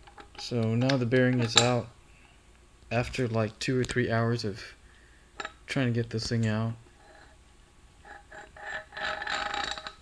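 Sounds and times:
metal ringing scrape: 8.0s - 10.0s.

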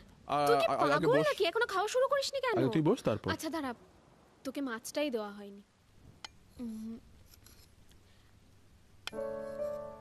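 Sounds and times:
person humming: 6.6s - 7.0s.

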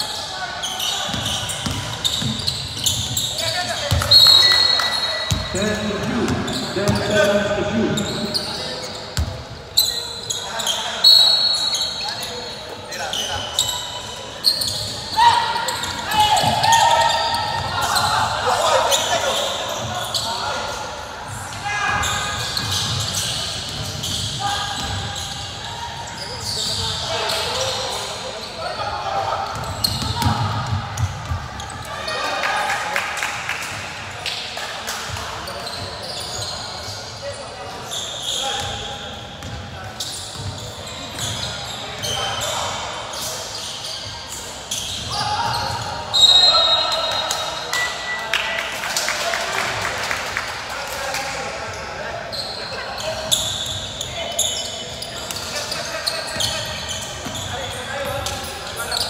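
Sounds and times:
sneaker squeaks: 0.0s - 32.4s, 35.0s - 48.2s, 51.7s - 59.0s.

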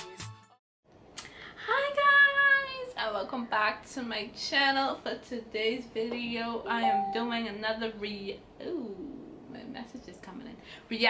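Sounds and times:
woman talking: 1.6s - 11.0s
woman calling out high vowel: 6.7s - 7.5s.

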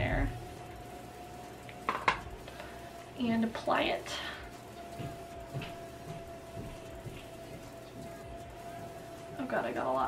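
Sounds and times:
makeup brush dabbing skin: 4.8s - 10.0s.

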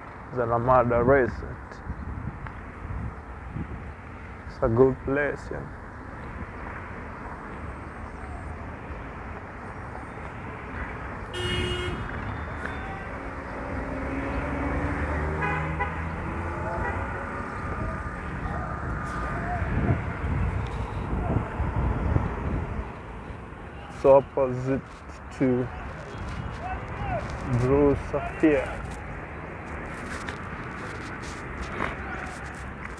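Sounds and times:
traffic noise: 0.0s - 32.9s
car horn toot: 11.3s - 13.1s, 15.3s - 16.1s
faint voices: 16.5s - 20.2s, 23.6s - 29.1s, 30.8s - 32.8s.

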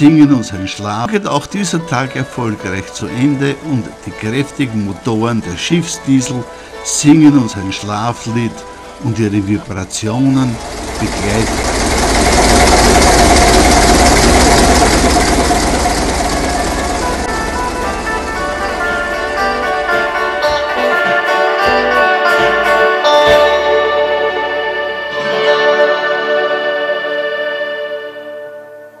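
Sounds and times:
music: 0.0s - 11.6s, 16.0s - 29.0s
ship diesel engine running: 1.6s - 22.2s.

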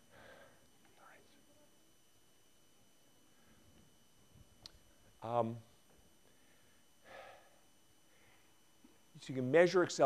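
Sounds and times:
faint breathy sounds: 0.0s - 1.6s, 6.3s - 8.7s.

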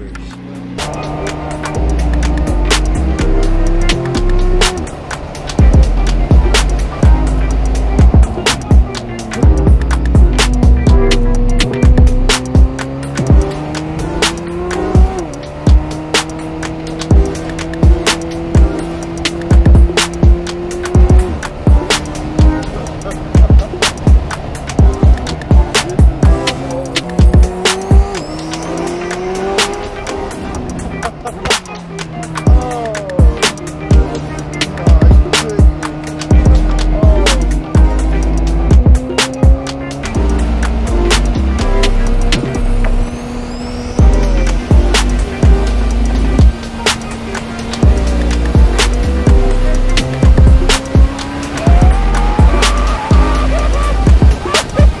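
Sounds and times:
music with drum beat and bass: 0.0s - 55.0s.

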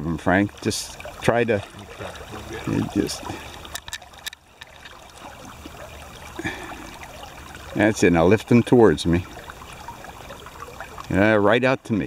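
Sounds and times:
stream water running: 0.0s - 12.0s.

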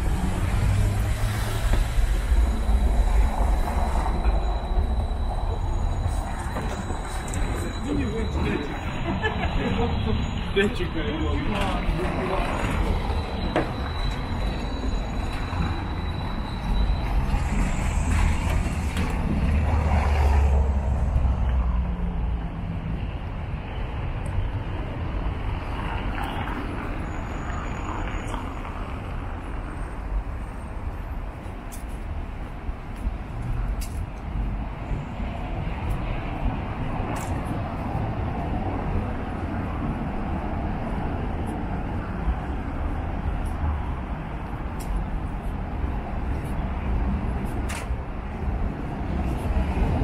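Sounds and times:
hum of car traffic: 0.0s - 50.0s.

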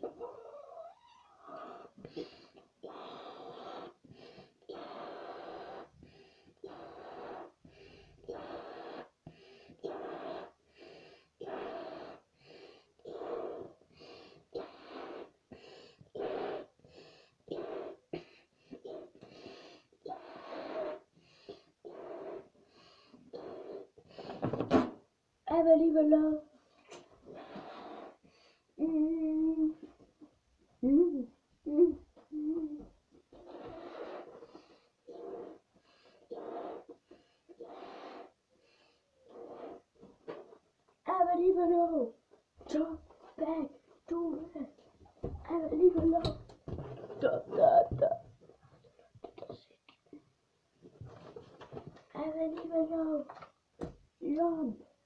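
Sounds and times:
child blowing up balloon: 1.6s - 25.0s, 26.9s - 29.9s, 30.9s - 38.5s, 39.2s - 40.7s.

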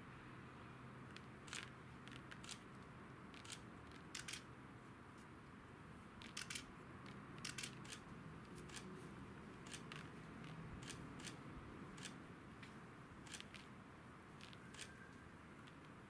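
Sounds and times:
sharp clicks and ticks: 1.1s - 2.6s, 3.3s - 4.4s, 6.2s - 8.0s, 9.6s - 11.4s, 12.0s - 12.2s, 13.2s - 13.7s.

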